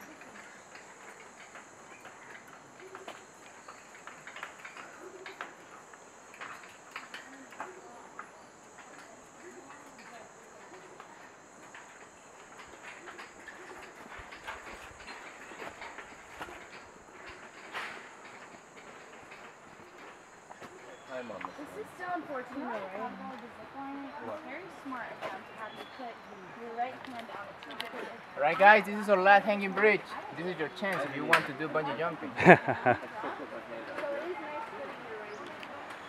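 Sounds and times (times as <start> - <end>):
footsteps on metal grating: 8.2 - 23.4.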